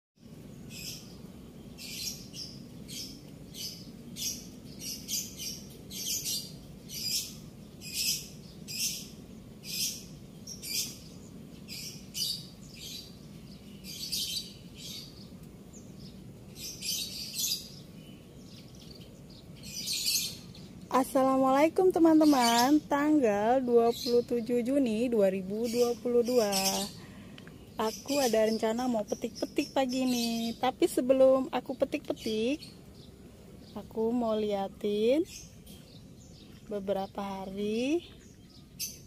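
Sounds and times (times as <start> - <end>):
small birds chirping: 0.2 - 39.0.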